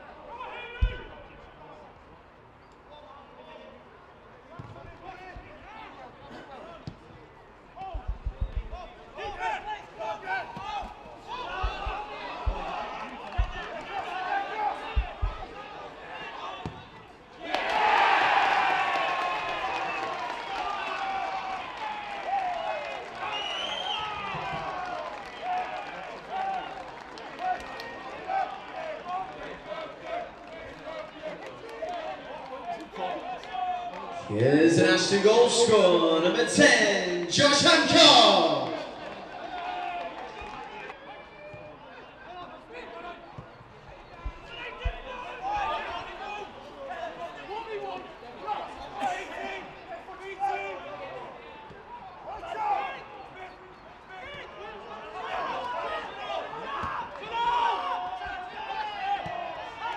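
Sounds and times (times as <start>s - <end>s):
crowd cheering: 7.5s - 59.9s
ball being kicked: 11.6s - 13.7s, 15.0s - 15.5s.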